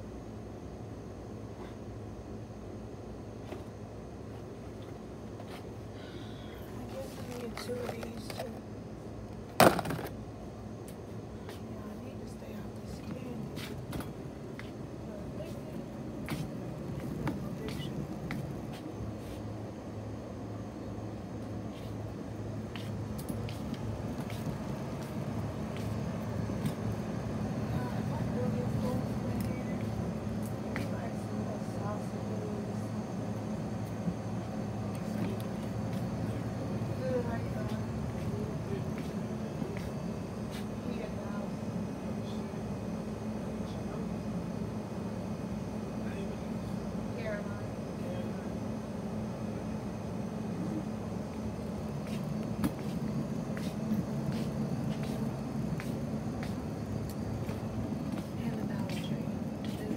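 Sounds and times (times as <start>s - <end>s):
background voices: 6.0s - 8.7s, 11.3s - 19.4s.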